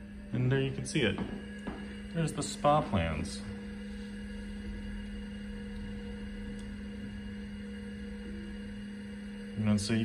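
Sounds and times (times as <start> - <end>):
computer humming: 0.0 - 10.0.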